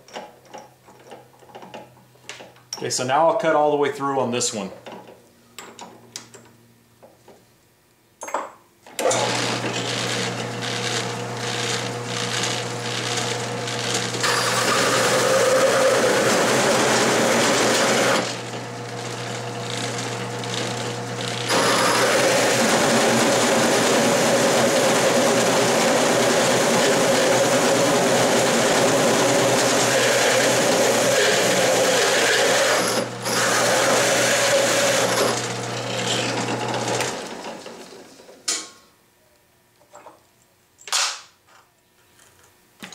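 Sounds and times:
drill press motor hum: 9.0 - 38.0
hole saw cutting steel: 14.2 - 18.3, 21.5 - 23.0, 29.2 - 36.4.

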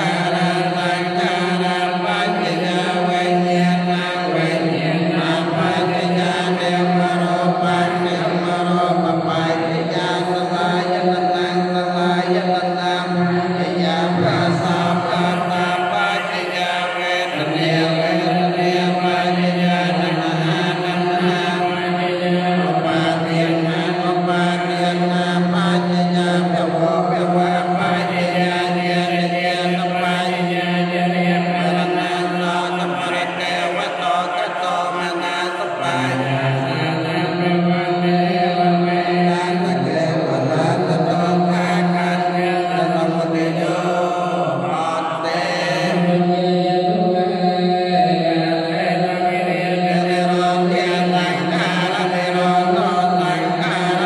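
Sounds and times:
monks chanting: 0.0 - 54.0.

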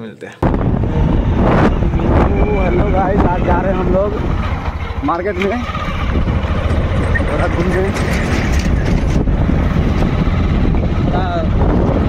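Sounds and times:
wind buffeting microphone: 0.4 - 12.0.

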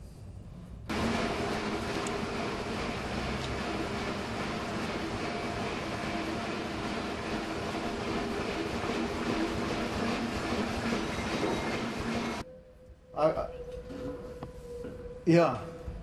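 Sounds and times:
mechanical running noise: 0.9 - 12.4.

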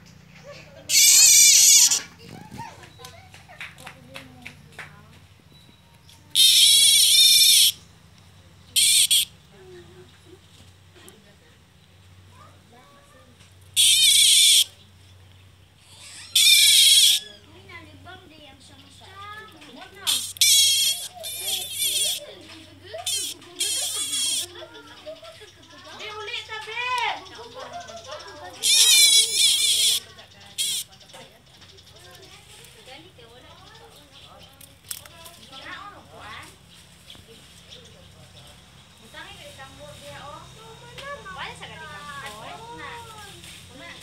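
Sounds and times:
cicada alarm buzz: 0.9 - 2.0, 6.3 - 7.9, 8.7 - 9.4, 13.8 - 14.8, 15.8 - 17.3, 20.0 - 22.3, 23.0 - 24.6, 28.6 - 30.9.

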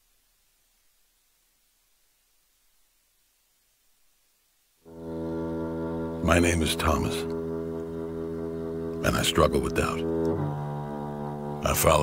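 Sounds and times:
sustained music drone: 4.9 - 12.0
man speaking: 6.2 - 7.3, 9.0 - 10.1, 11.6 - 12.0.

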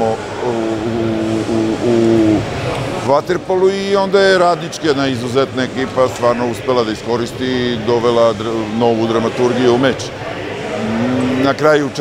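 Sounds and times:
man's drawn-out hesitation sound: 0.0 - 4.0, 5.6 - 12.0
man speaking: 0.0 - 10.1, 10.7 - 12.0.

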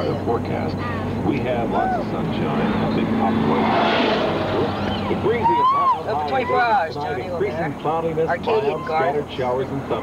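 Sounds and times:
car engine and road noise: 0.0 - 10.0
radio weather forecast: 1.2 - 8.4.

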